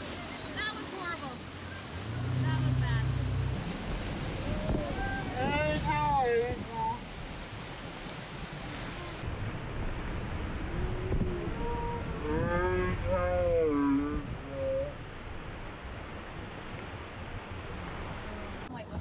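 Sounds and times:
boat motor and water rushing: 0.0 - 19.0
slowed voices yelling: 10.8 - 15.0.

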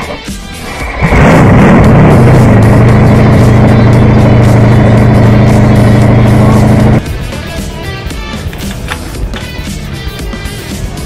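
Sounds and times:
motorcycle engine revving: 0.6 - 7.0.

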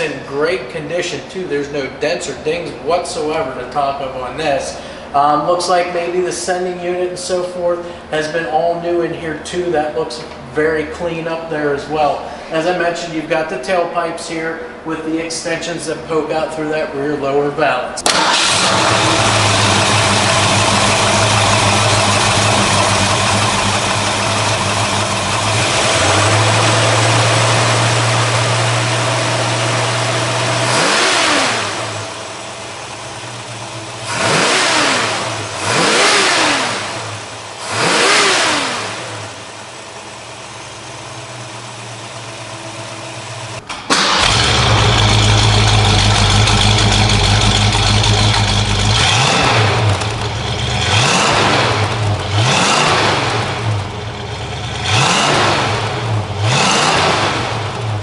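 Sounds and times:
car engine idling and revving: 18.0 - 58.0
deep loud exhaust note: 18.4 - 43.6, 44.2 - 58.0.

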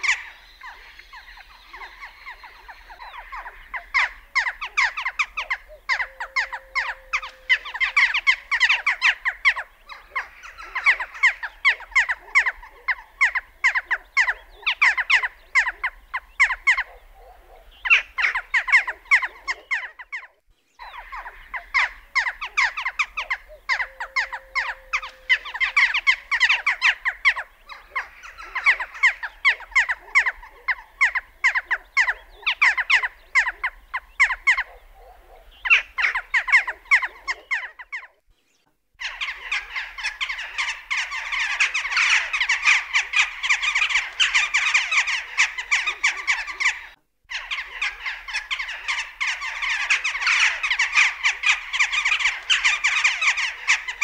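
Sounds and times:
jackdaws calling: 0.0 - 54.0.

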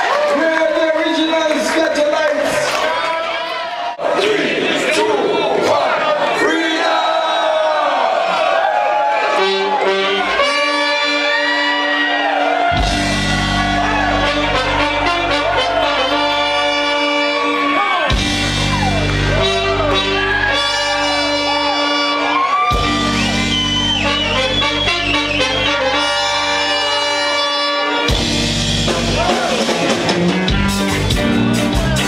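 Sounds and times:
horn section holding notes: 9.1 - 31.8
reggae band playing: 9.3 - 32.0
heavy bass line: 12.7 - 27.3, 28.0 - 32.0.

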